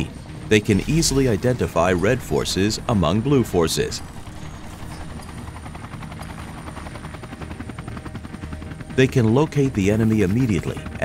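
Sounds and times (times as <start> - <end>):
helicopter rotors passing: 0.0 - 11.0.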